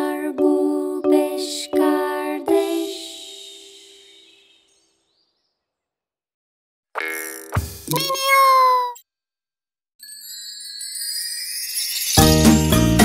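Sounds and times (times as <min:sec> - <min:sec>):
gentle lullaby: 0:00.0 - 0:04.9
cartoon cat meowing: 0:07.9 - 0:09.0.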